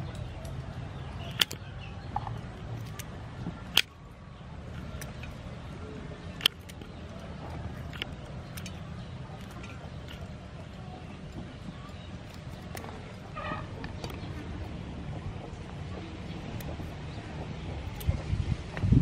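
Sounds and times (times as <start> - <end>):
low background hum: 0.0 - 19.0
blade clicking on metal tray: 0.1 - 14.5.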